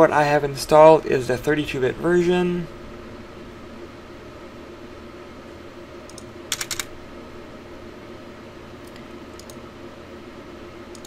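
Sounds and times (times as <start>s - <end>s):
computer hum: 0.0s - 11.0s
computer clicks: 6.0s - 6.9s, 8.8s - 9.6s.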